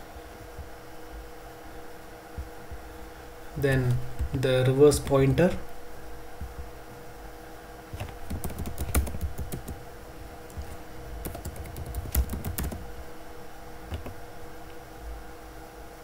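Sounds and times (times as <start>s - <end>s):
computer keyboard typing: 8.0s - 9.8s, 10.5s - 12.8s, 13.9s - 14.2s.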